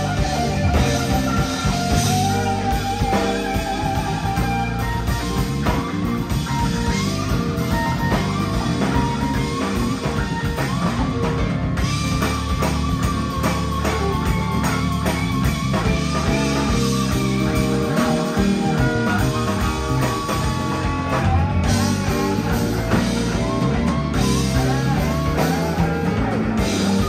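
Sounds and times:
electric guitar lead bent notes: 0.0 - 27.0
live electric blues band: 0.0 - 27.0.

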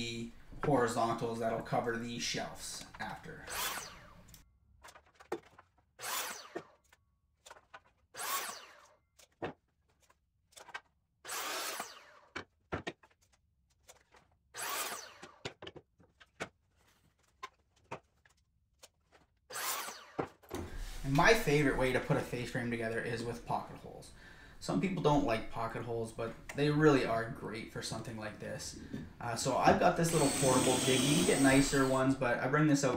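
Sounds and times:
miter saw cutting wood: 3.5 - 4.3, 6.0 - 6.8, 8.1 - 9.0, 11.3 - 12.3, 14.6 - 15.4, 19.5 - 20.3, 30.0 - 32.2.

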